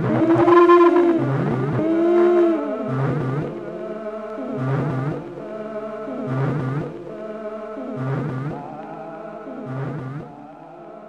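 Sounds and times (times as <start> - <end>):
bending pitched tones with delay: 0.0 - 3.5.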